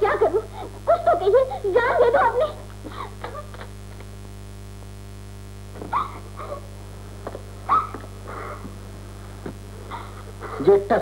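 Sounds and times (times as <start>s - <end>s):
woman sobbing: 0.0s - 3.8s, 5.9s - 6.7s
steady low hum: 0.0s - 11.0s.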